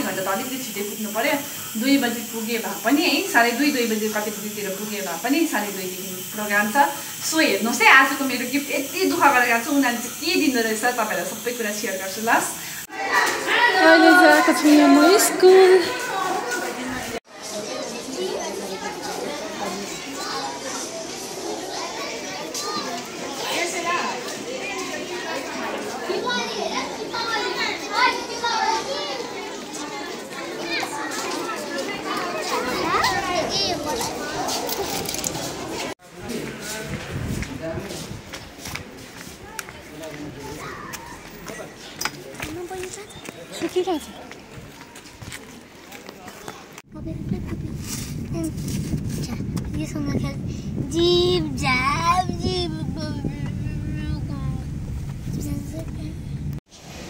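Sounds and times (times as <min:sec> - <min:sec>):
children chattering: 0:00.0 - 0:57.0
child shouting: 0:13.0 - 0:16.4.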